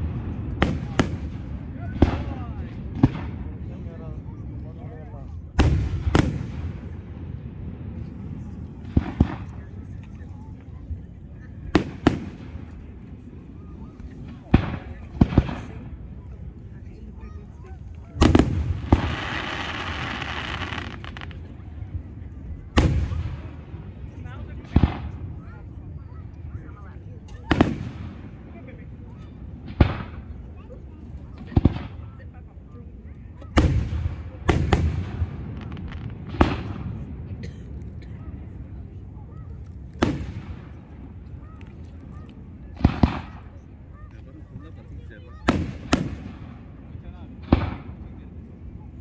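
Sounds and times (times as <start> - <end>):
firework shells booming: 18.2 - 21.5, 47.4 - 48.1.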